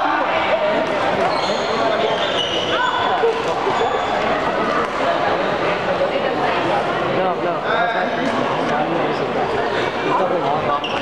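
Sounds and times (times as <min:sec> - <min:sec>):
indistinct voices in a hall: 0:00.0 - 0:11.0
sneakers squeaking on floor: 0:01.2 - 0:04.3, 0:10.8 - 0:11.0.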